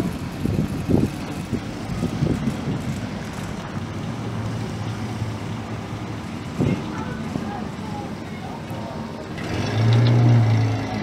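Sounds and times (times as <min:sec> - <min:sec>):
wind on microphone: 0:00.0 - 0:03.4.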